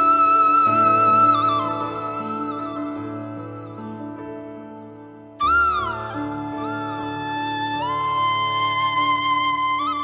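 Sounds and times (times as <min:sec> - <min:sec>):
bamboo flute melody: 0:00.0 - 0:04.7, 0:05.4 - 0:10.0.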